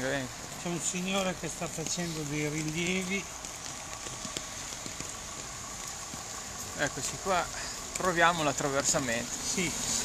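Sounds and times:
footsteps on wet pavement: 0.0s - 10.0s
water running through street: 0.0s - 10.0s.

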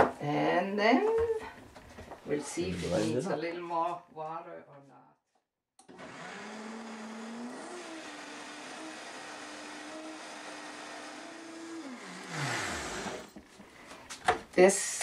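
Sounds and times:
blender motor running: 5.8s - 13.4s.

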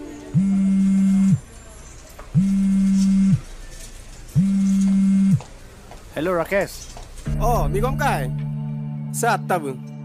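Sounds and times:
smartphone vibrating on a table: 4.4s - 5.4s.

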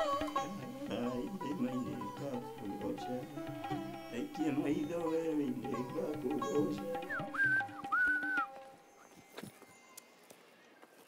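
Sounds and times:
soft background music: 0.0s - 11.0s
person whistling: 6.8s - 8.6s.

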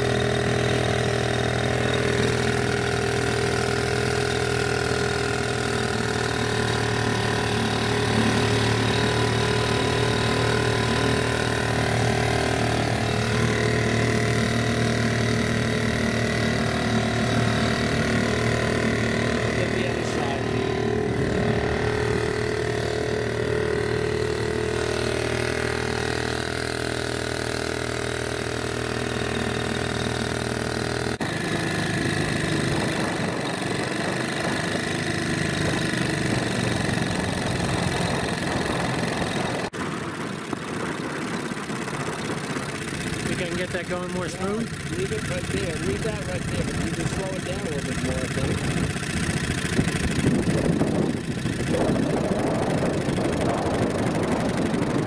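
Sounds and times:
outboard motor running: 0.0s - 55.0s.

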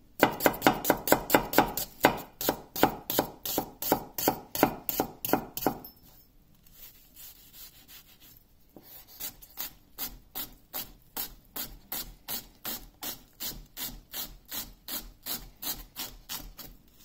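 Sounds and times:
knife chopping on wooden board: 0.2s - 5.9s.

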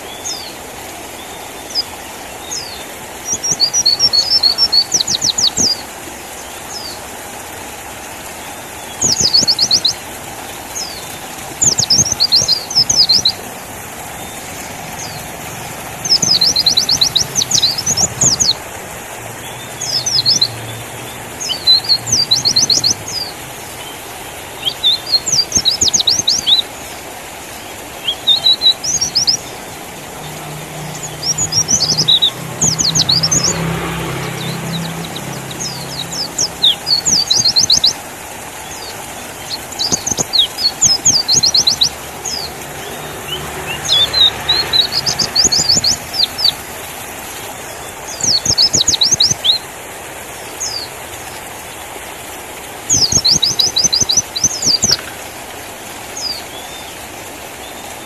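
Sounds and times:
bird twittering chirps: 1.2s - 7.0s, 8.4s - 10.1s, 10.7s - 49.6s, 50.4s - 51.0s, 52.9s - 55.2s.

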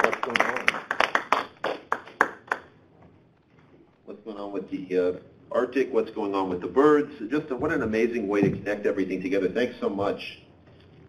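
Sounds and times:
audience hand claps: 0.0s - 2.7s.

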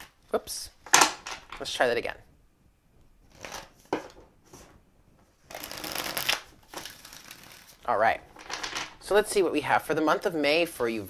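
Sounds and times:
cards shuffling crackle: 5.5s - 7.8s.

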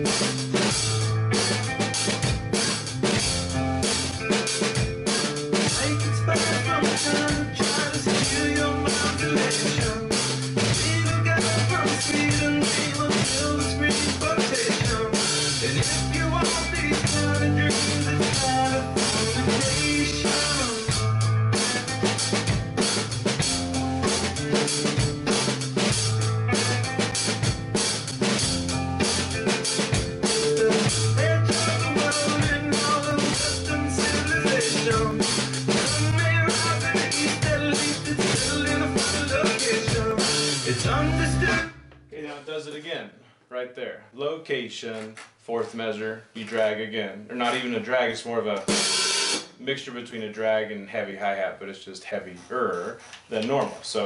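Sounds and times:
recorded rock song: 0.0s - 42.4s, 47.4s - 50.7s
drum kit playing: 0.0s - 42.8s, 47.3s - 47.8s, 48.5s - 49.6s.

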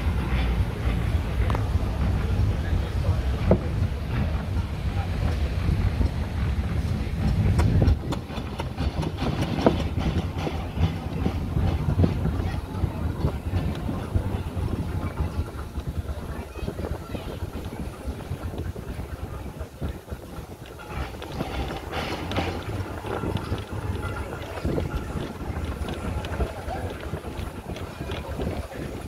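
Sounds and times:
steam wagon rumbling: 0.0s - 29.0s
knocks and rattles: 3.4s - 29.0s.

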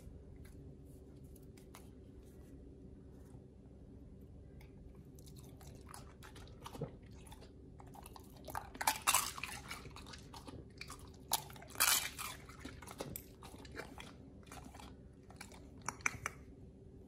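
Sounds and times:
dog chewing raw meat: 5.2s - 16.2s.

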